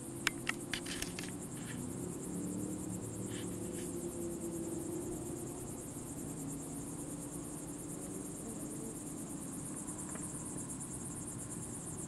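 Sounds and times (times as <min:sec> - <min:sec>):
crickets chirping trill: 0:00.0 - 0:12.0.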